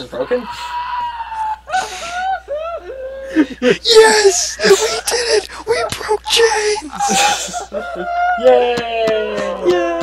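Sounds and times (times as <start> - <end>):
person wheezing laughter: 1.3 - 8.2.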